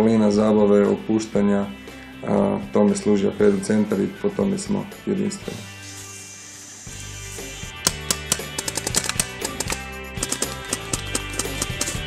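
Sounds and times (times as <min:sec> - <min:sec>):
clicky percussive beat: 0:07.8 - 0:12.0.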